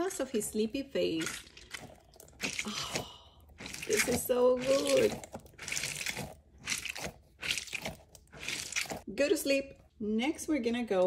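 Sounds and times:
squishy ball squelching: 0:00.1 - 0:09.1.

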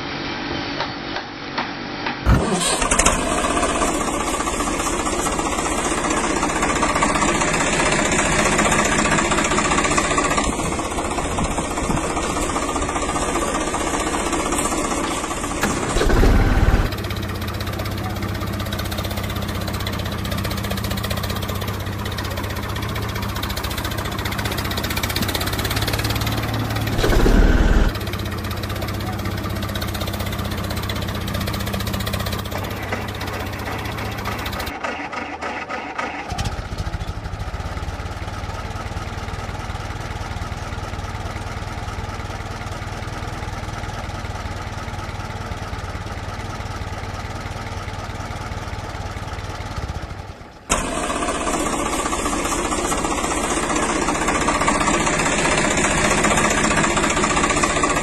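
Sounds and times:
tractor engine running: 0:02.2 - 0:58.0
loud low bursts: 0:25.5 - 0:28.0.

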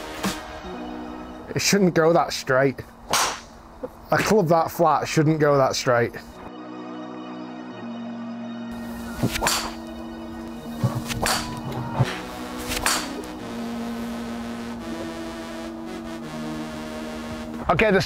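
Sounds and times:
background music: 0:00.0 - 0:02.2, 0:06.3 - 0:18.0
club hitting golf ball: 0:03.1 - 0:03.5, 0:09.2 - 0:09.8
golf club swishes: 0:09.1 - 0:09.8.

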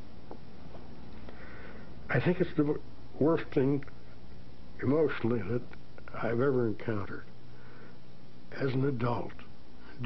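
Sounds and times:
tape hum and hiss: 0:00.0 - 0:10.0.

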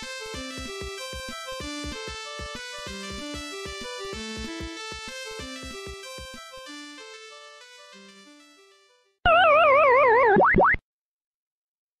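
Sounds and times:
electronic warbling tone: 0:09.3 - 0:10.8.

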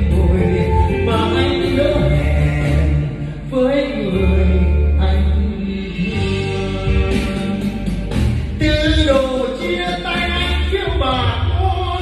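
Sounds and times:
karaoke music with strong bass: 0:00.0 - 0:12.0.

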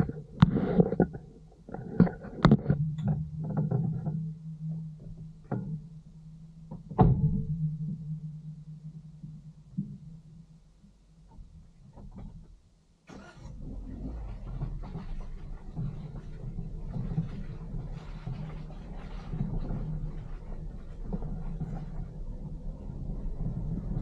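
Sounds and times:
vehicle engine driving slowly: 0:13.2 - 0:24.0
knocks and rattles: 0:14.3 - 0:24.0.

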